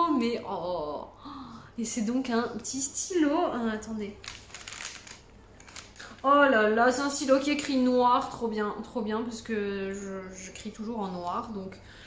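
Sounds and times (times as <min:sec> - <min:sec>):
paper rustle: 0:04.2 - 0:06.3.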